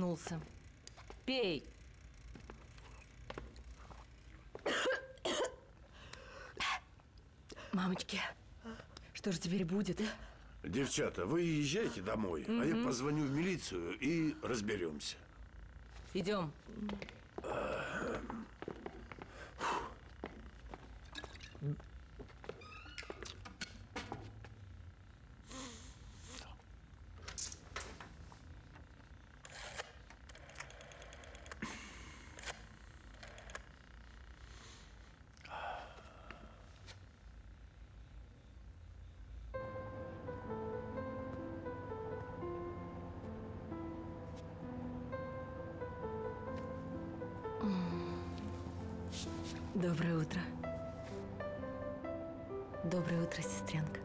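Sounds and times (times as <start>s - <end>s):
woman coughing: 4.6s - 5.7s
rotary dial scraping rattle: 29.4s - 31.6s.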